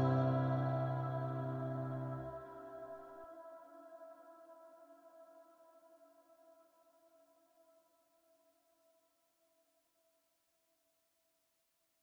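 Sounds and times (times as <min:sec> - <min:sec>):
piano chord ringing: 0:00.0 - 0:03.0.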